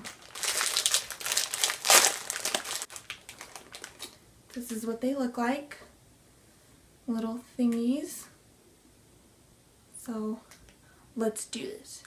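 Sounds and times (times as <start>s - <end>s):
candy packet crinkling: 0.0s - 4.2s.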